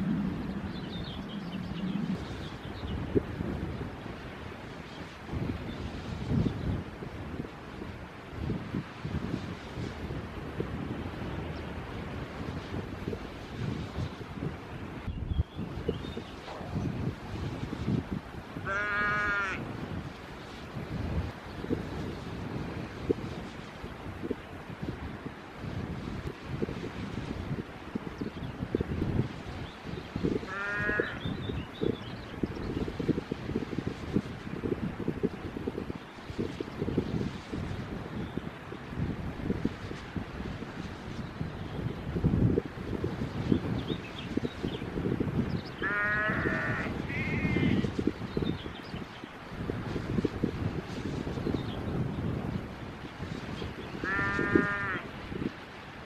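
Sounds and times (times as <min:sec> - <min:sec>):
wind rumble on microphone: 0:00.0 - 0:56.0
sheep bleating: 0:18.6 - 0:19.6, 0:30.5 - 0:31.2, 0:45.8 - 0:47.8, 0:54.0 - 0:55.1
animal calls: 0:18.7 - 0:19.6, 0:30.5 - 0:31.2.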